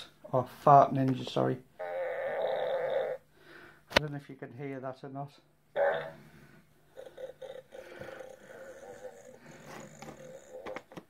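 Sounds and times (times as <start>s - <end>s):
electronic fart sound from toy: 1.8s - 3.2s, 5.8s - 6.2s, 7.0s - 10.8s.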